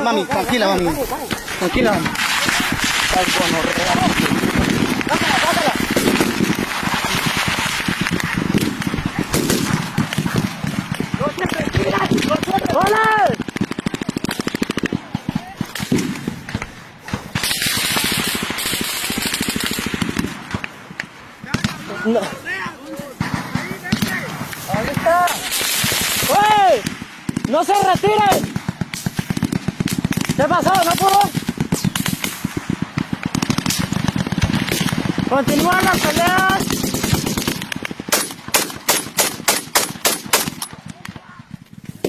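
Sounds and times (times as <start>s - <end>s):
rapid gunfire: 0.0s - 20.8s, 23.2s - 42.0s
people shouting: 10.0s - 13.4s, 21.9s - 26.9s
microphone rustling through grass: 41.5s - 42.0s.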